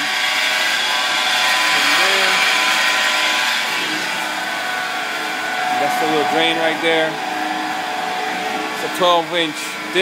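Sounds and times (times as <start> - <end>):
electric motor humming: 0.0 - 10.0.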